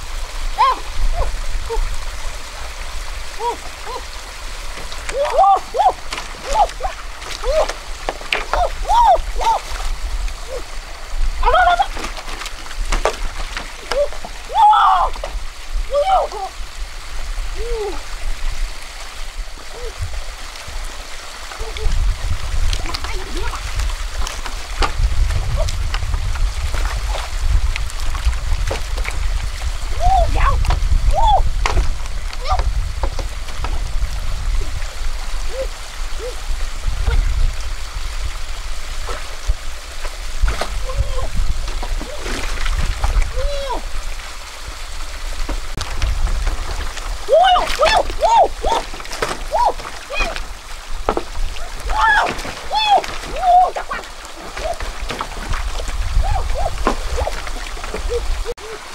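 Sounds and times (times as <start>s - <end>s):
small waterfall and stream: 0.0s - 58.9s
woman's high-pitched exclamations: 0.6s - 1.9s, 15.9s - 16.5s.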